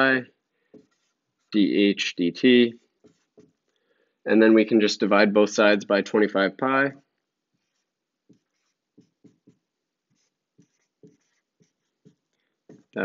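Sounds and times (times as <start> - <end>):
marker writing on whiteboard: 0.0 - 1.7, 2.4 - 3.8, 7.2 - 13.0.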